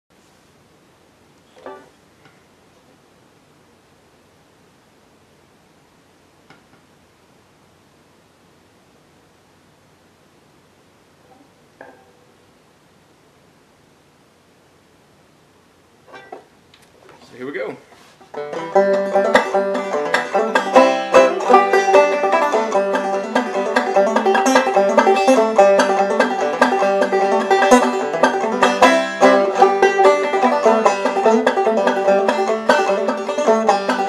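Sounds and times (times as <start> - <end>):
steady low hiss: 0.1 - 34.0.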